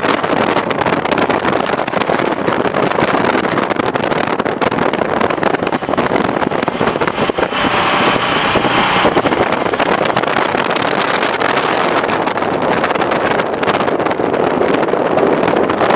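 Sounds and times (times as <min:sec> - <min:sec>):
car road noise: 0:00.0 - 0:15.9
wind on microphone: 0:00.0 - 0:15.9.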